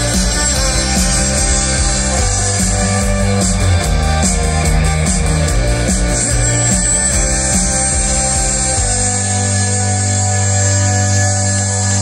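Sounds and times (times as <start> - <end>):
live rock band playing: 0.0 - 12.0
moving bass line: 0.0 - 12.0.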